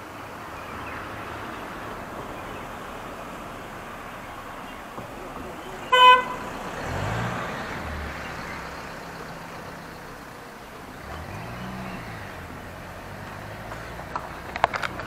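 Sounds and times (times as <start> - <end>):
vehicles passing: 0.0 - 15.0
vehicle horn toot: 5.6 - 6.6.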